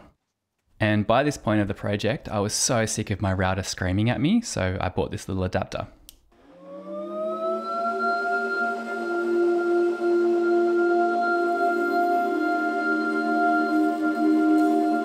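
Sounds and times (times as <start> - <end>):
wood router spinning up and humming: 6.4 - 12.3.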